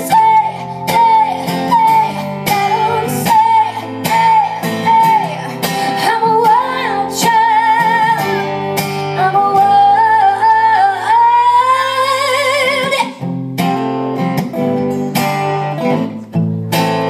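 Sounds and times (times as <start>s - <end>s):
woman singing with vibrato: 0.0s - 13.2s
acoustic guitar strumming: 0.0s - 17.0s.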